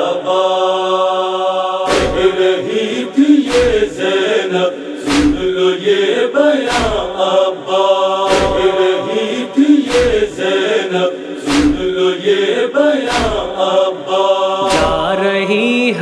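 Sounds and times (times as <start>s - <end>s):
chorus chanting: 0.0s - 16.0s
deep thump: 5.1s - 5.6s, 8.3s - 8.9s, 11.5s - 12.0s.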